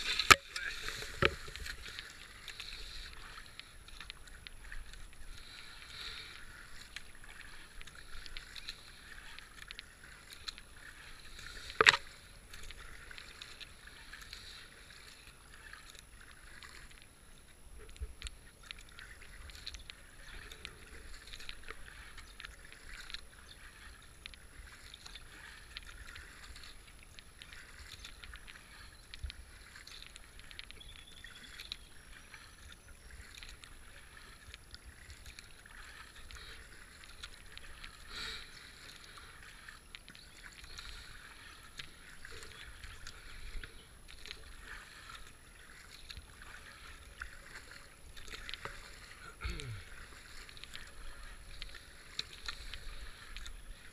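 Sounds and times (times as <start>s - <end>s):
paddle splashing water: 0.0s - 53.9s.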